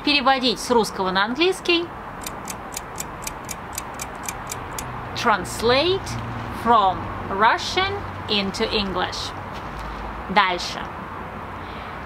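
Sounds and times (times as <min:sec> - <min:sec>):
clock ticking: 0:02.2 - 0:04.9.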